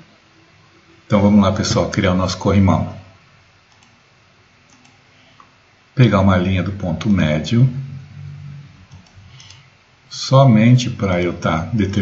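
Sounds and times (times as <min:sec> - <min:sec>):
faint computer mouse clicks: 0:03.7 - 0:04.0, 0:04.7 - 0:05.5, 0:08.9 - 0:09.6.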